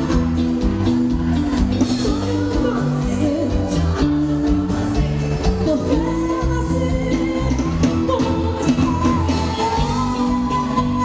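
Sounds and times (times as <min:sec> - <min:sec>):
pop band playing: 0:00.0 - 0:11.0
woman singing lead: 0:00.0 - 0:11.0.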